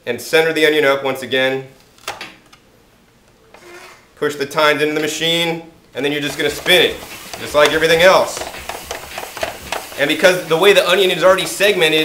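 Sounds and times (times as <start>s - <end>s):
faint rubbing: 6.2s - 12.0s.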